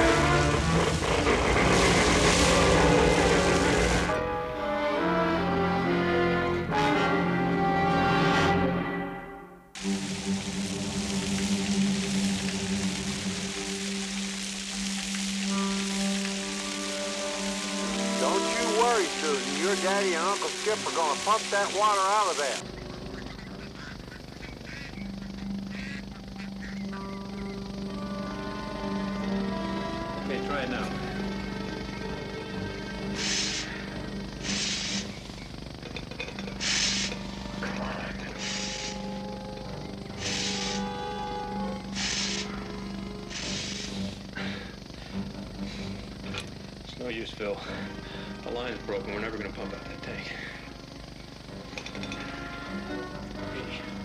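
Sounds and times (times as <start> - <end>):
pump hissing strokes: 0.0 - 4.2, 9.8 - 22.6, 32.6 - 48.7
water pump humming: 0.0 - 6.8, 9.8 - 54.0
tense background music: 0.0 - 54.0.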